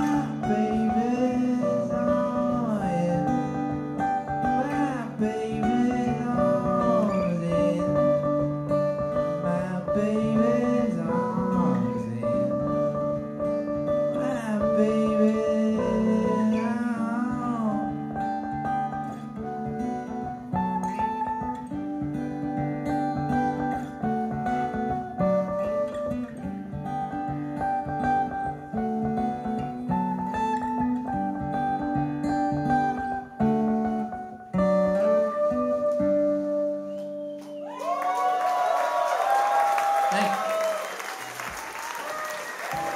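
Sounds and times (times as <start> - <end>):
live band with acoustic guitars: 0.0 - 42.9.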